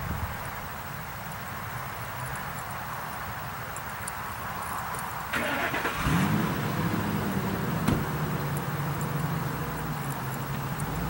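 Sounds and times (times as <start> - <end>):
engine starting and idling: 5.3 - 10.8.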